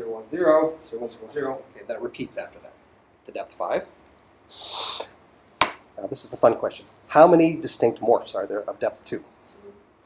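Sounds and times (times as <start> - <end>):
man breathing in: 4.5 - 5.1.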